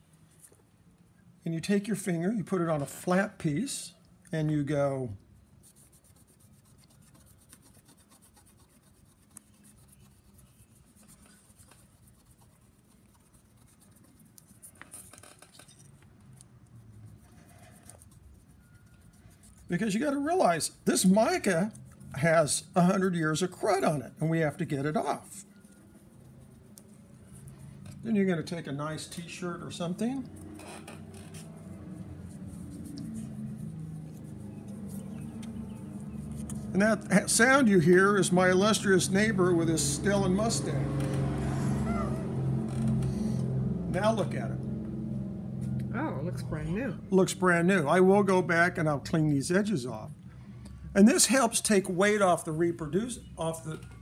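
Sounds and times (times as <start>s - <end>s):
scratchy rubbing under fingertip: 4.4s - 44.4s
car engine droning: 27.3s - 47.0s.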